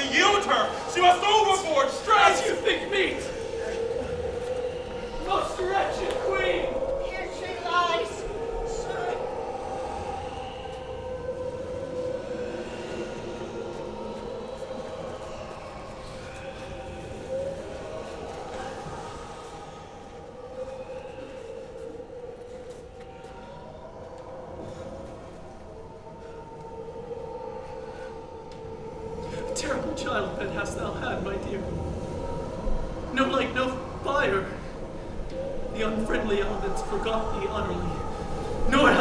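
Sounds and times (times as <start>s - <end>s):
person speaking: 0.0s - 4.0s, 38.7s - 39.0s
wavering howling wind tones: 0.0s - 39.0s.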